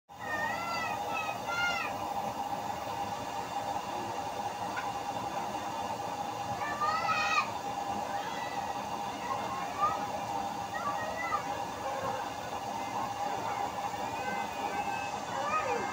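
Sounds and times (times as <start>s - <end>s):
stove blower fan rushing: 0.1s - 15.9s
high sliding call: 8.5s - 15.9s.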